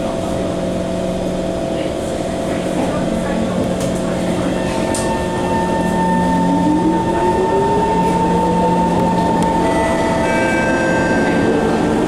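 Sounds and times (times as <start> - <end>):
constant hum: 0.0 - 12.0
train running rumble: 0.0 - 12.0.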